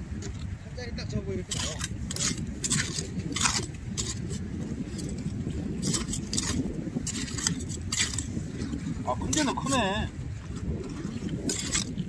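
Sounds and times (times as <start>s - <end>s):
steady low rumble: 0.0s - 12.0s
hoe scraping through shelly mud: 1.5s - 12.0s.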